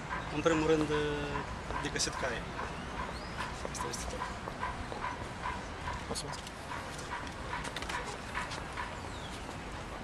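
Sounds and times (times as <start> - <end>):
outdoor background hum: 0.0 - 10.0.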